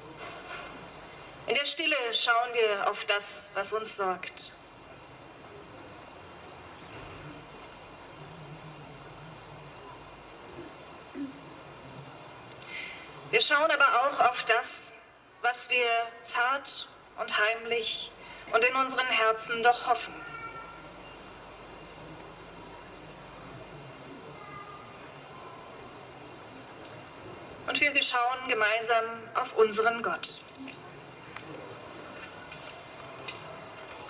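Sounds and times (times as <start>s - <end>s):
faint low hum: 0.0s - 34.0s
steady background hiss: 0.0s - 34.0s.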